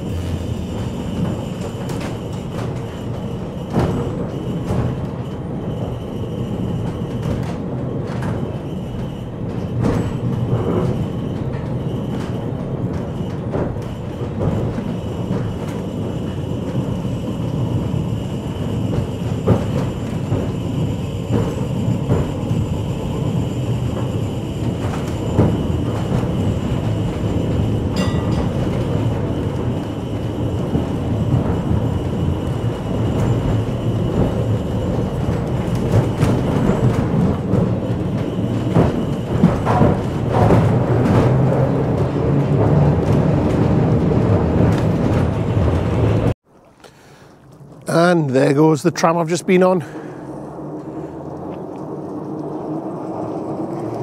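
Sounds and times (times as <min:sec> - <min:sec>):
tram wheels rumbling on rails: 0:00.0 - 0:46.4, 0:47.5 - 0:54.0.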